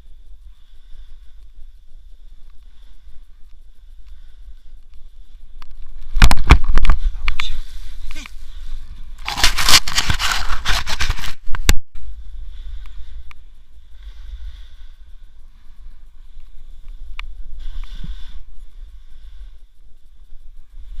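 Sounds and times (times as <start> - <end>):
snow crackling against camera: 0.0 - 21.0
soft wind rumble: 0.0 - 21.0.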